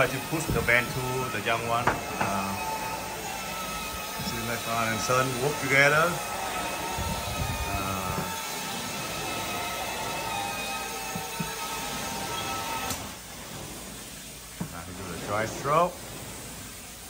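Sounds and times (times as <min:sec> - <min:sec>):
carpet cleaner suction hiss: 0:00.0 - 0:17.0.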